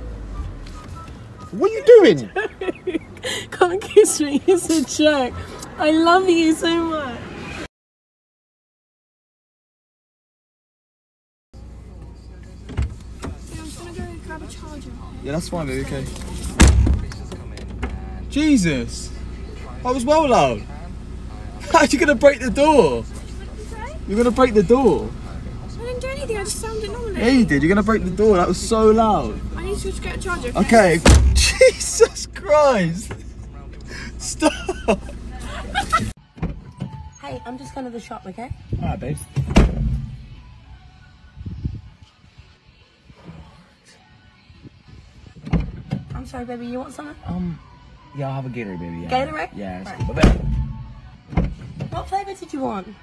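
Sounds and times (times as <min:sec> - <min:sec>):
low rumble in car cabin: 0:11.6 - 0:36.2, 0:50.0 - 0:52.6
dull thump: 0:16.6 - 0:18.0, 0:31.0 - 0:31.6, 0:39.4 - 0:40.4, 0:50.0 - 0:52.1.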